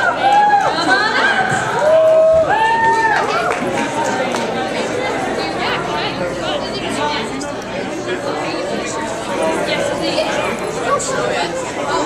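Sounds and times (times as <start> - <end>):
people talking in a hall: 0.0 - 12.0.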